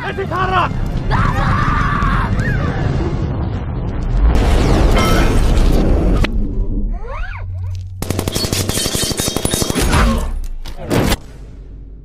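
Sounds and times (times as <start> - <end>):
loud rumbling crash: 2.0 - 6.8
rapid automatic gunfire: 8.0 - 10.2.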